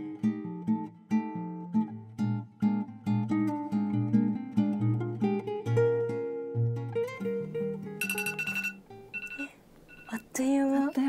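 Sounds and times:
acoustic guitar music: 0.0 - 11.0
smartphone alarm beeping: 8.0 - 10.2.

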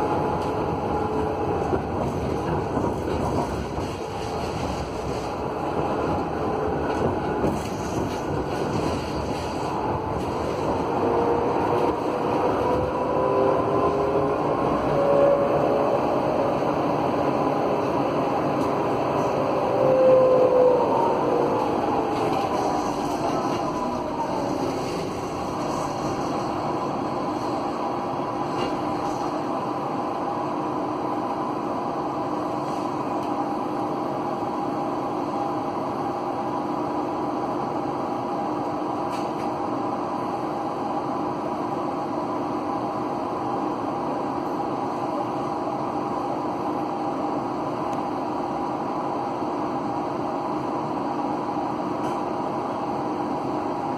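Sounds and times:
tram motor whine: 0.0 - 53.9
wheels rolling on rails: 0.4 - 12.9.

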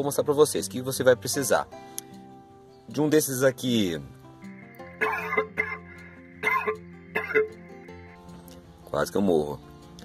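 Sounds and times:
background music: 0.0 - 10.0
man coughing: 5.0 - 7.5.

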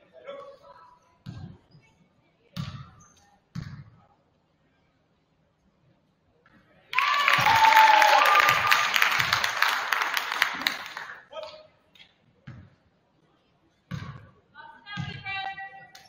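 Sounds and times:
people clapping: 6.9 - 11.3
crowd cheering and shouting: 7.0 - 9.4.

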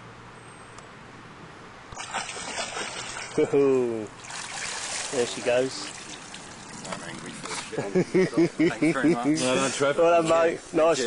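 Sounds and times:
fish tail splashing water: 2.0 - 7.3.

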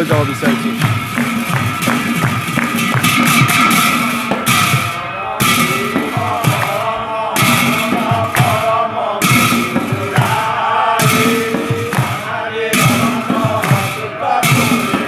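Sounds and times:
chanted devotional singing: 0.0 - 15.0
drum beats: 0.0 - 15.0
hand cymbals clashing: 0.0 - 15.0.

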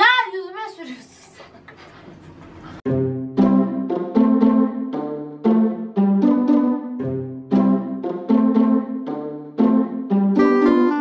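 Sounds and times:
background music held chords: 2.9 - 11.0.

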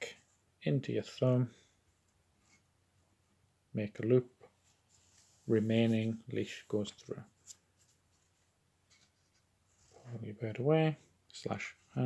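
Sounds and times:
rope sliding rustle: 4.6 - 6.2.

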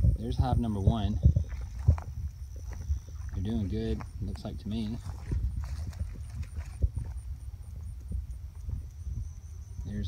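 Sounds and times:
low rumble on microphone: 0.0 - 10.0
footsteps through dry grass: 0.9 - 8.0.

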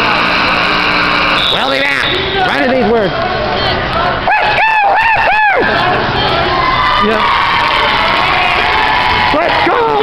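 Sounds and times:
steady held tone: 0.0 - 7.0
gymnasium crowd noise: 0.0 - 10.0.

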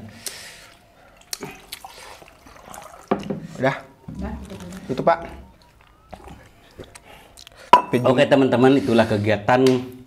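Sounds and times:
wet chewing sounds: 0.2 - 3.6, 4.2 - 7.7.

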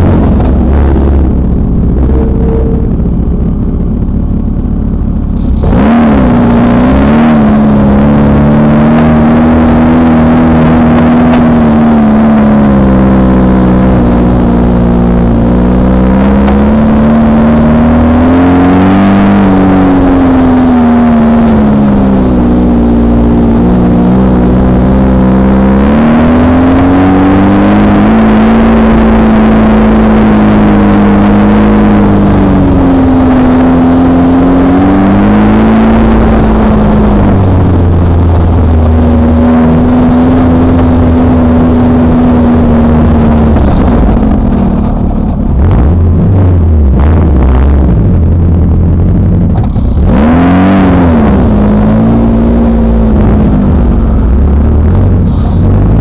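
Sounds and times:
buggy engine revving: 0.0 - 56.0.

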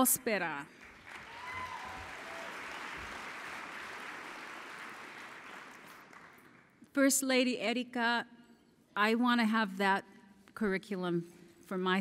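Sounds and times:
audience applauding: 0.8 - 6.7.

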